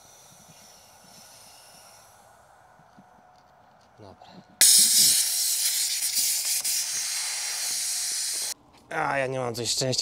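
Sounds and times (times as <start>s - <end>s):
gas cartridge hissing: 0.0s - 2.2s, 4.6s - 8.6s.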